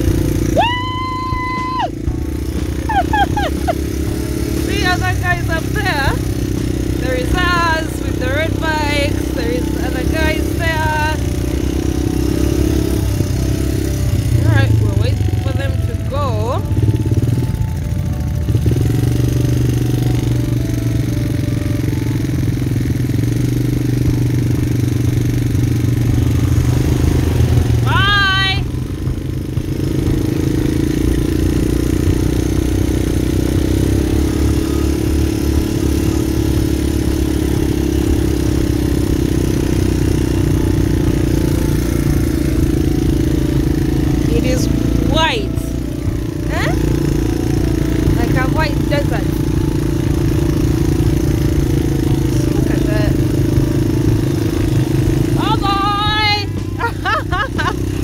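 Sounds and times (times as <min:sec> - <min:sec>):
quad bike engine running: 0:00.0 - 0:58.0.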